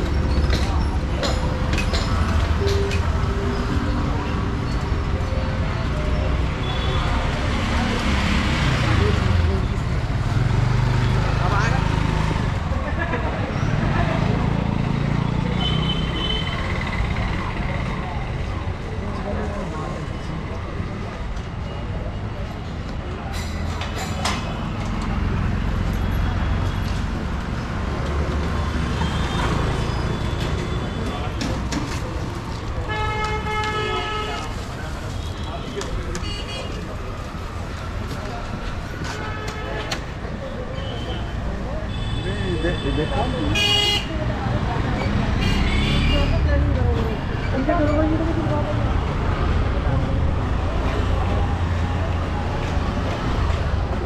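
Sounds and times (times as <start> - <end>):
people's voices: 0.0 - 54.0
traffic rumble: 0.0 - 54.0
vehicle engines passing: 0.0 - 54.0
faint vehicle horns: 40.8 - 44.2.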